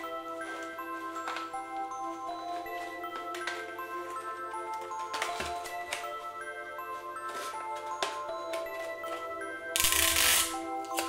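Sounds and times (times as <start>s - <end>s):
background music with chiming notes: 0.0s - 11.0s
sticky tape ripping off dispenser: 9.8s - 11.0s.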